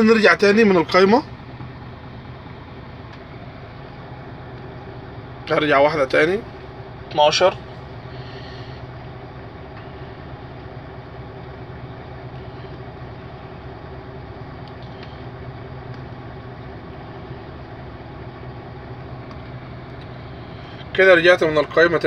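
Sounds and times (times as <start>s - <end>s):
diesel truck engine idling: 0.0s - 22.0s.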